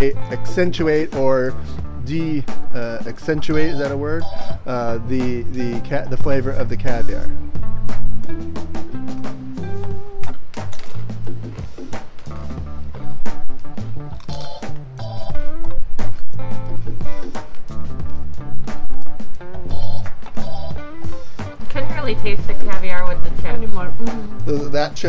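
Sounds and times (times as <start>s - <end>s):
background music with steady beat: 0.0s - 25.0s.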